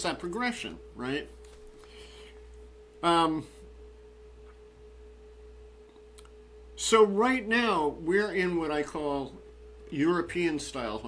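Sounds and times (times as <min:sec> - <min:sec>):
faint steady pure tone: 0:00.0 - 0:11.0
low hum: 0:00.0 - 0:11.0.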